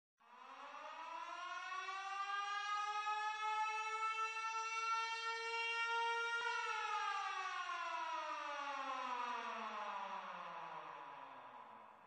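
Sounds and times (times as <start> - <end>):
siren wailing: 0.6 - 11.1.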